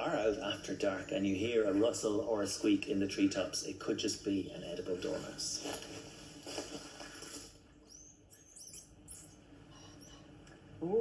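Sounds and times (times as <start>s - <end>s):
dormouse squeaking: 7.9s - 10.3s.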